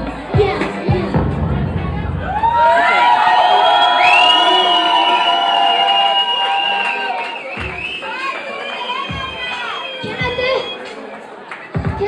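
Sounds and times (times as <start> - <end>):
crowd screaming and cheering: 0.0 - 12.0.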